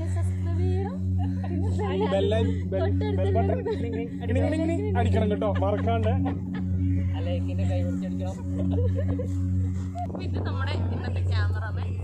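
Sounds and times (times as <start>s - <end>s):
high bending voices: 0.0s - 12.0s
people talking and laughing: 0.0s - 12.0s
steady low drone: 0.0s - 12.0s.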